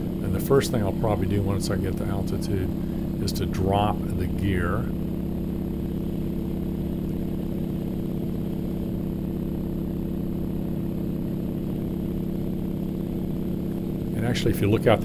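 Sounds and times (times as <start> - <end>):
radial aircraft engine droning: 0.0 - 15.0.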